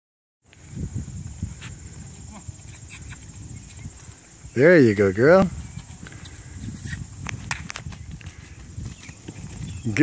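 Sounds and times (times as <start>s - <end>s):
hooves thudding on grass: 0.6s - 10.0s
sharp hoof clicks: 5.8s - 10.0s.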